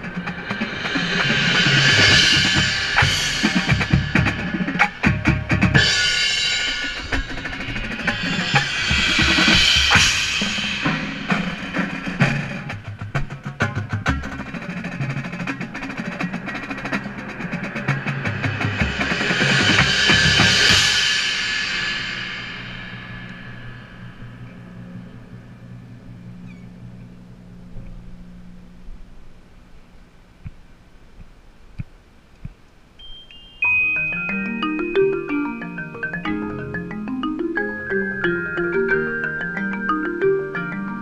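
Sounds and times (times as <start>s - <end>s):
shimmering cymbal rolls: 0.0s - 12.9s, 15.4s - 27.4s, 33.0s - 36.5s
drums rolling and striking: 0.0s - 25.8s, 33.6s - 41.0s
marimba: 33.0s - 41.0s.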